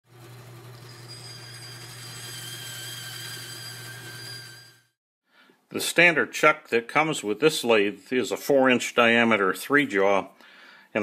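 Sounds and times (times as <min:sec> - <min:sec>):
small motor whirring: 0:00.2 - 0:05.0.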